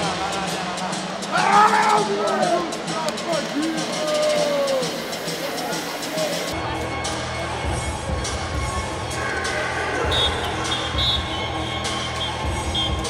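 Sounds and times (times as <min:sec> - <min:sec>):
music with heavy bass beat: 0:03.8 - 0:13.0.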